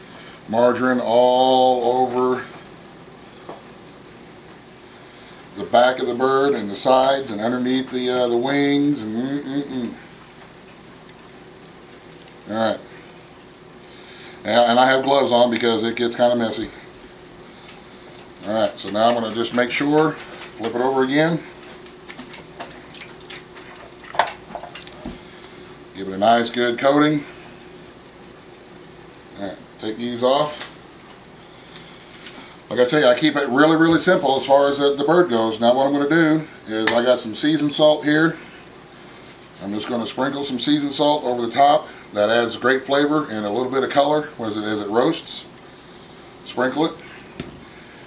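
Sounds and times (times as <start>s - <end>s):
room tone hiss: 0.0s - 48.0s.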